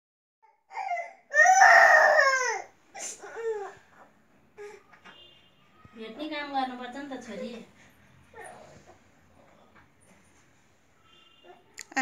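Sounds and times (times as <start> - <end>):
child crying: 0.7 - 3.8.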